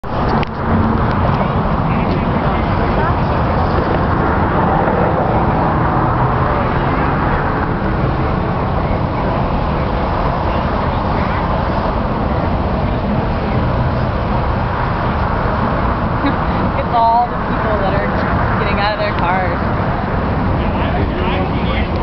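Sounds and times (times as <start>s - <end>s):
highway traffic: 0.0s - 22.0s.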